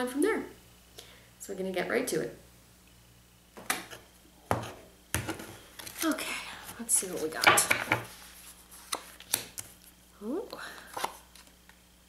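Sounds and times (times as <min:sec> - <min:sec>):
card handling noise: 0:05.2 - 0:10.0, 0:10.7 - 0:11.8.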